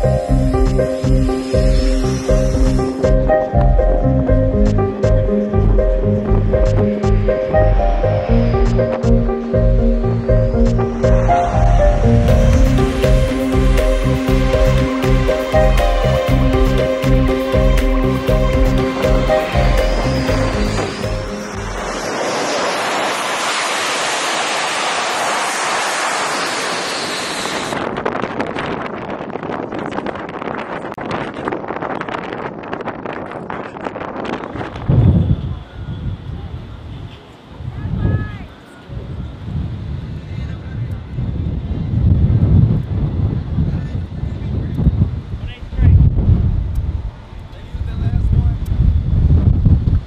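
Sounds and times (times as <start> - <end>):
jet engines roaring: 0.0 - 30.6
wind buffeting microphone: 0.0 - 50.0.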